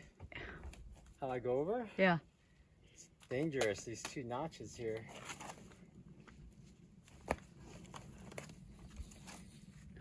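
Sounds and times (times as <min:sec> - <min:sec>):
faint footsteps on dirt trail: 0:00.0 - 0:01.8, 0:03.0 - 0:10.0.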